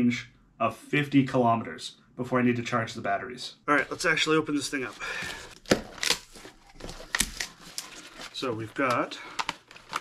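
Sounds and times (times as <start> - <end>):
packing tape tearing: 5.3 - 8.1.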